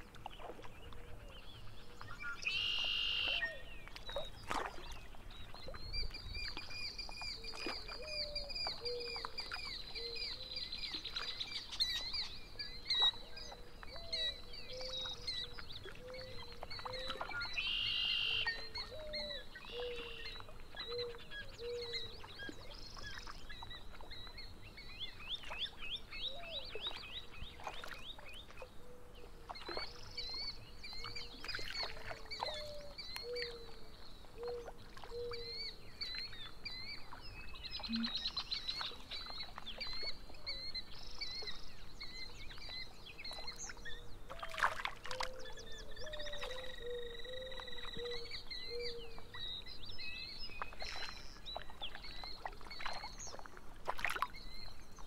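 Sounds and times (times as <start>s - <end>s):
birds chirping and singing: 5.2s - 28.4s.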